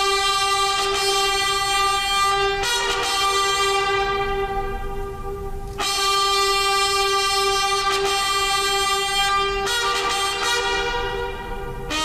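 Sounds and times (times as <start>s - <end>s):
brass band playing held chords: 0.0s - 12.0s.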